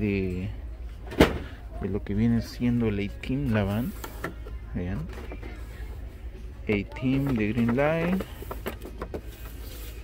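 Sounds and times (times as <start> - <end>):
cardboard boxes clicking and knocking: 6.7 - 10.0.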